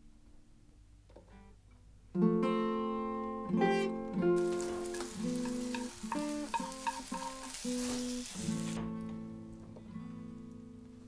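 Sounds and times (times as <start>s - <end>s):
acoustic guitar picking: 2.1s - 10.9s
food frying in a pan: 4.4s - 8.9s.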